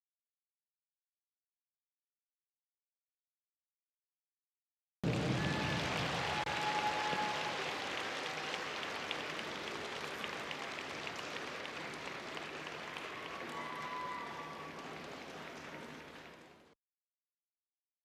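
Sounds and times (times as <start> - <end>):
audience applauding: 5.0 - 16.8.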